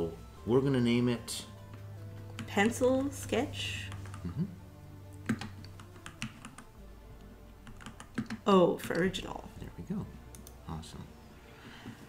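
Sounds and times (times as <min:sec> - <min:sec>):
keyboard keystroke clicks: 0:07.6 - 0:08.4.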